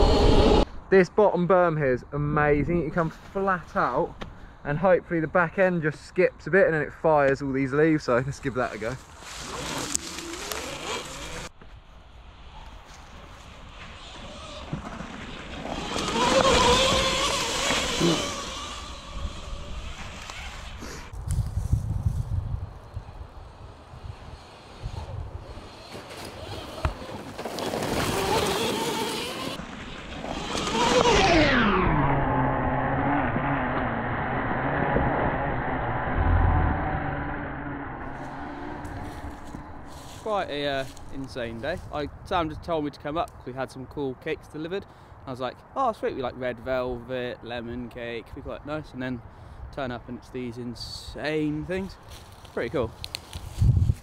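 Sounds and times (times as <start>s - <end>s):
tyre noise on dirt trail: 7.0s - 43.6s, 50.2s - 54.0s
electric motor whining: 9.4s - 11.5s, 14.0s - 21.1s, 28.1s - 40.2s.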